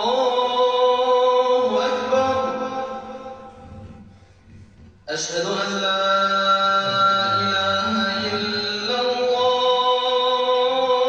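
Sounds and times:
man chanting recitation: 0.0 - 4.1, 5.1 - 11.0.

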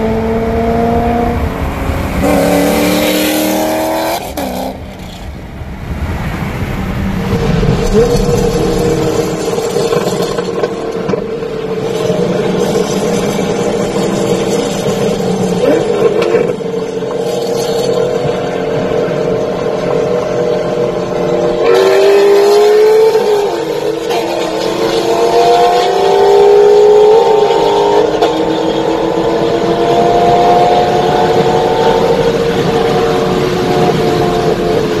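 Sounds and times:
car engines accelerating hard: 0.0 - 35.0.

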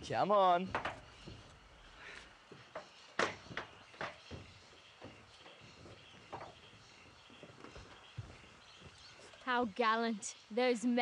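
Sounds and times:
footsteps on corrugated metal roof: 0.2 - 9.6.

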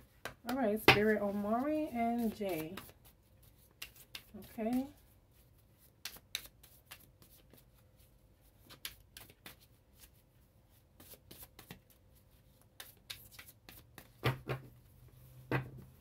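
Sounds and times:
cards being shuffled: 1.6 - 4.9, 5.8 - 7.8, 8.6 - 10.2.

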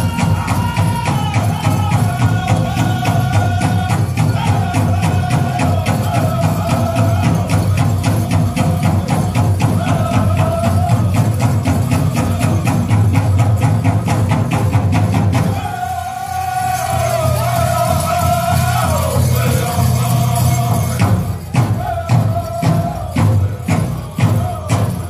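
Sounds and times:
people singing in high voices: 0.0 - 14.3, 15.0 - 25.0
big drum beating: 0.0 - 25.0.

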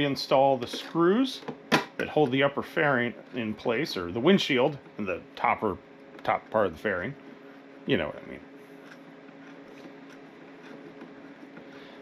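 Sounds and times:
quiet steady hum: 0.0 - 12.0.

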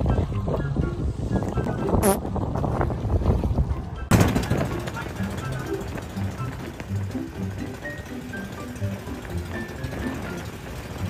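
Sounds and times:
wind on microphone: 0.0 - 4.1
boat engine rumble: 0.0 - 11.0
voices: 3.7 - 11.0
background music: 4.1 - 11.0.

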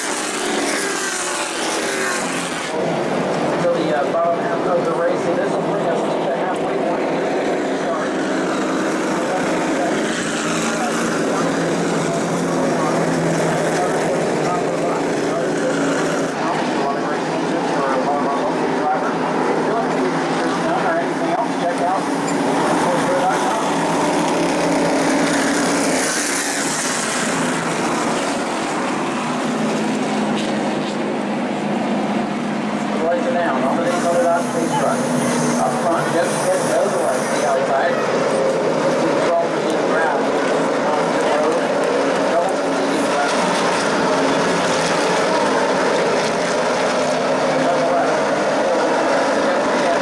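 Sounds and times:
car engine drone: 0.0 - 50.0
indistinct voices: 7.7 - 31.0, 33.0 - 46.6.

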